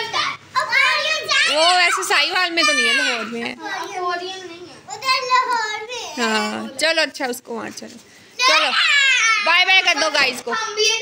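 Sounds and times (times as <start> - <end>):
children calling out in play: 0.0 - 6.7, 8.3 - 11.0.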